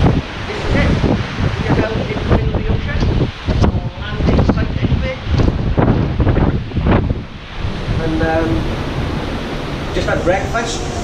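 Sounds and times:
waves rushing: 0.0s - 11.0s
wind buffeting microphone: 0.0s - 11.0s.

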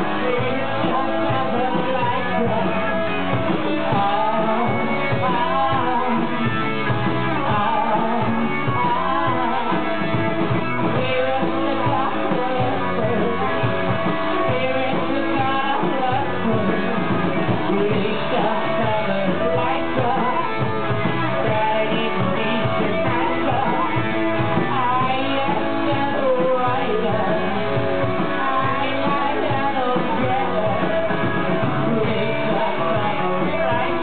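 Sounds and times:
drums: 0.0s - 34.0s
electric guitars: 0.0s - 34.0s
person singing: 0.0s - 34.0s.

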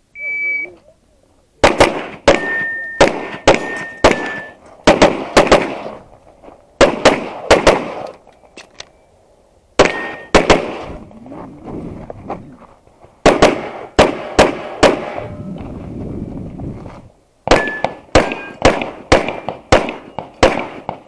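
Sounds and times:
rapid pistol fire: 1.6s - 6.0s, 6.8s - 8.0s, 9.8s - 10.9s, 13.2s - 15.2s, 17.5s - 21.0s
steel targets ringing: 2.3s - 4.6s, 9.8s - 10.4s, 17.5s - 18.6s.

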